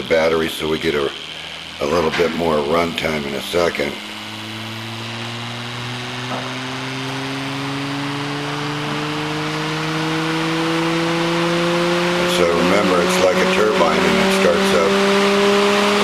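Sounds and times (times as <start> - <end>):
motor whining as it spins up: 0.0 - 16.0.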